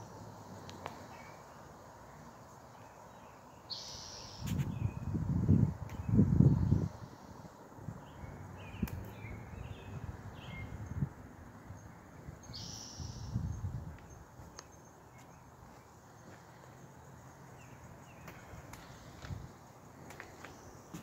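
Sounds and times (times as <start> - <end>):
faint bird chirps: 2.8 - 5.2, 11.7 - 15.9.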